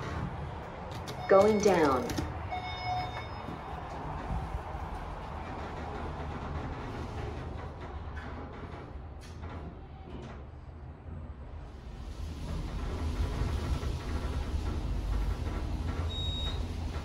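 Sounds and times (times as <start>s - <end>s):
elevator running hum: 0.0s - 17.0s
sliding doors closing: 0.0s - 17.0s
elevator tone: 1.0s - 4.3s, 12.2s - 17.0s.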